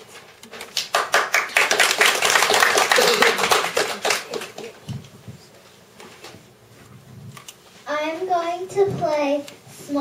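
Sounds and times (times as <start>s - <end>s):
audience applauding: 0.8s - 4.8s.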